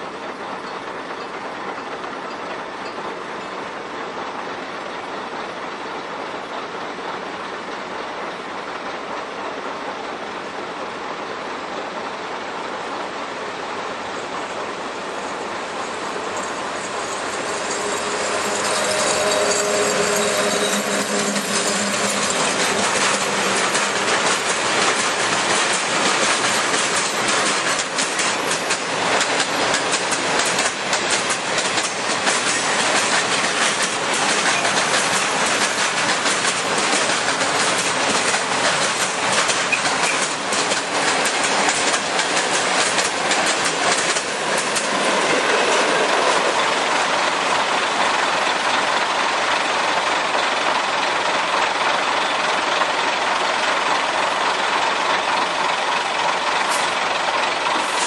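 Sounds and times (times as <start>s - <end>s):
freight train wheels rumbling: 0.0s - 58.0s
locomotive hum: 0.0s - 58.0s
wheels clacking over rail joints: 14.1s - 49.9s.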